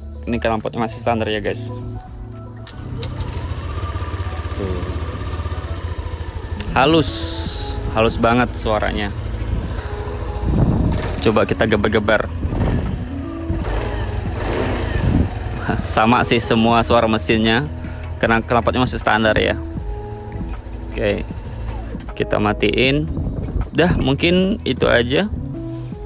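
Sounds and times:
scooter engine idling: 2.2 - 22.9.

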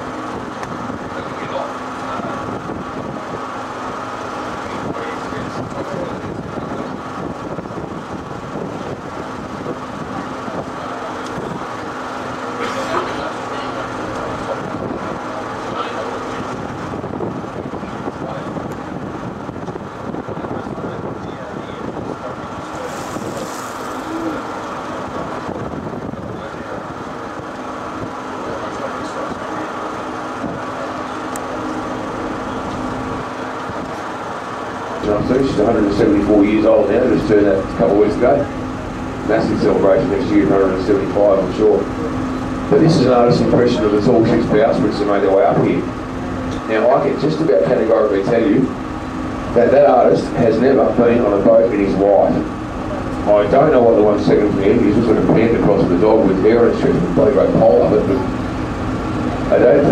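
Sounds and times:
boat engine drone: 0.0 - 59.9.

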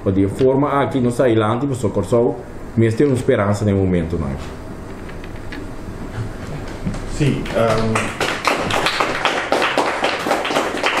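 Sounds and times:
small group clapping: 6.3 - 11.0.

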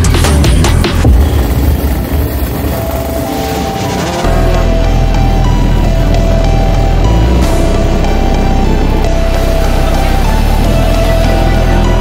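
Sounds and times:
background music: 0.0 - 12.0
motorcycle engines running: 0.0 - 12.0.

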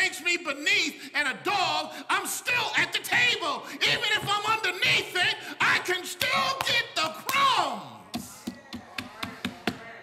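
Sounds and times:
hand tapping on wood: 8.1 - 9.9.

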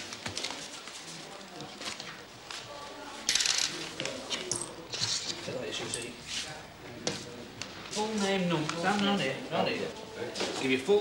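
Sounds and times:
coins clinking onto counter: 3.3 - 3.8.

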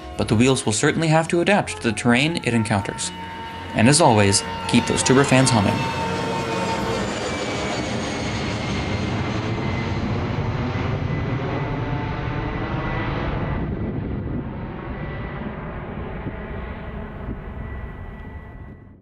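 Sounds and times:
airplane engine passing by: 0.0 - 18.8.

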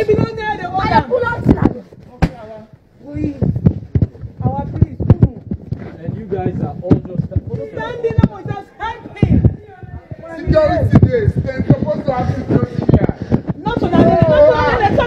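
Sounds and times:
people arguing and shouting: 0.0 - 15.0
sharp knocks and thumps: 3.4 - 8.6.

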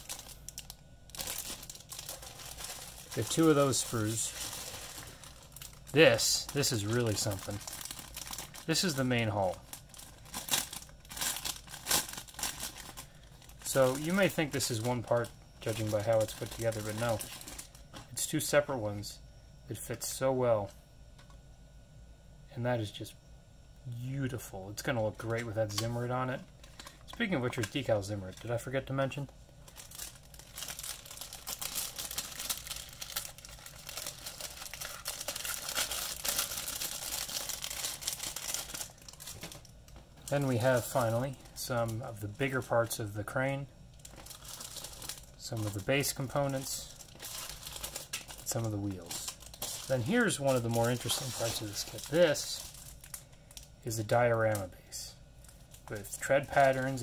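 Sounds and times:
plastic bag crinkling: 0.0 - 18.2, 25.2 - 54.7, 55.4 - 57.0.

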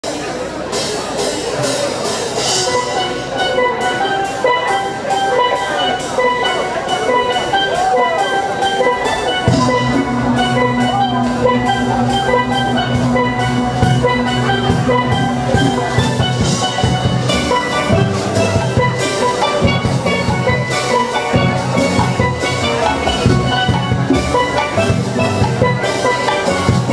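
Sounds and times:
quick percussion beat: 0.1 - 26.9
steel pans playing melody: 0.7 - 26.9
low bass notes: 2.4 - 26.9.

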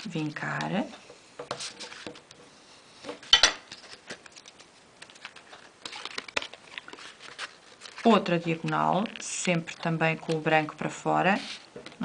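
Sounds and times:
paper rustling and crinkling: 1.5 - 2.2, 3.0 - 12.0.

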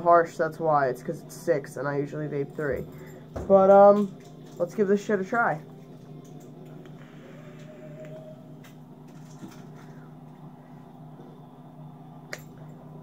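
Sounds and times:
steady low hum: 0.0 - 13.0
coil crackle: 3.8 - 12.8.

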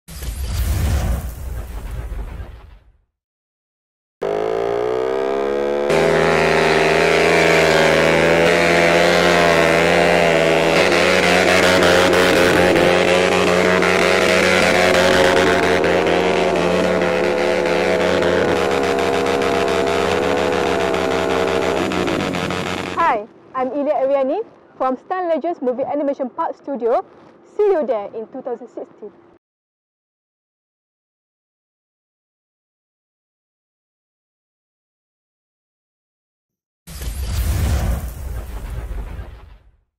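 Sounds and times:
motorcycle engine revving high: 4.2 - 23.2.

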